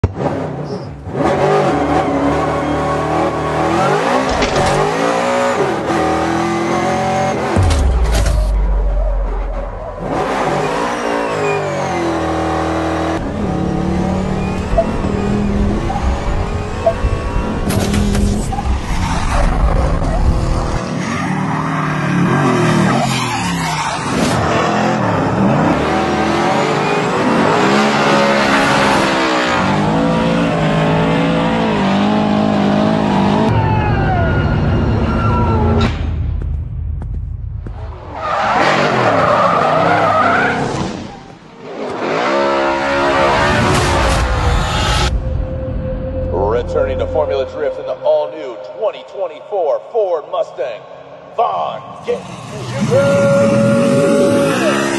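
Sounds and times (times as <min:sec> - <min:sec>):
car engine revving: 0:00.0 - 0:21.0, 0:21.9 - 0:33.6.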